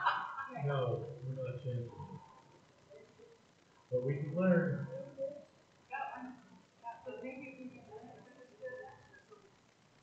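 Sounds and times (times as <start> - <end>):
person talking in low voice: 0.0 - 2.3, 3.9 - 5.4.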